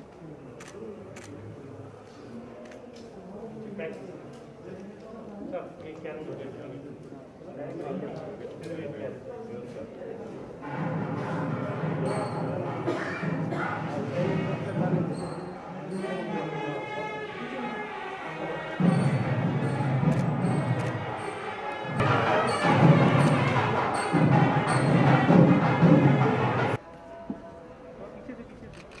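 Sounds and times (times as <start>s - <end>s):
voices: 0.0s - 29.0s
music with regular beat: 18.8s - 26.8s.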